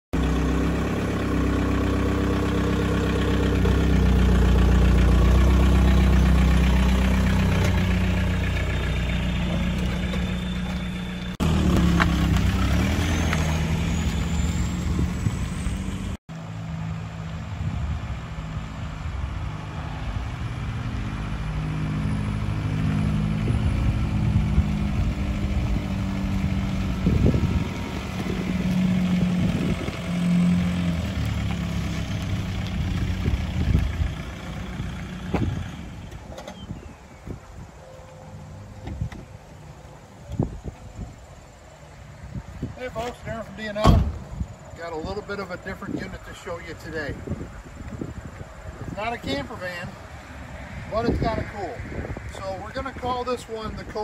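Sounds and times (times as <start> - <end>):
pickup engine running: 0.2 - 50.0.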